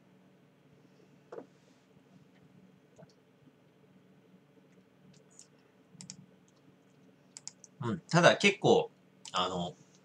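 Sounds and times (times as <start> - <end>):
faint computer clicks: 4.7 - 7.8.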